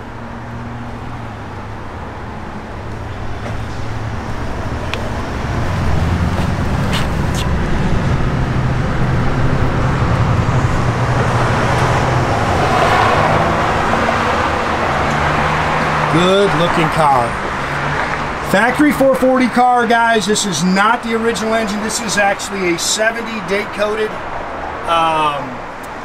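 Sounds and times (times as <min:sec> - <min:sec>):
vehicle engine running: 0:00.0 - 0:19.6
road traffic noise: 0:00.0 - 0:26.0.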